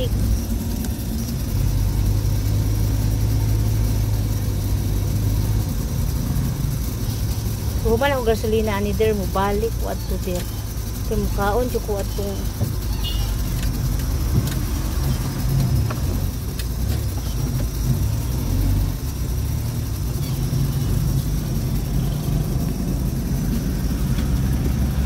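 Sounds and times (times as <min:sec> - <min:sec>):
car engine and road noise: 0:00.0 - 0:25.0.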